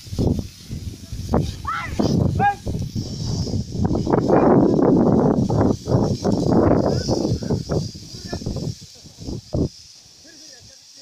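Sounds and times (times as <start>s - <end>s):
animals trampling straw: 0.0s - 11.0s.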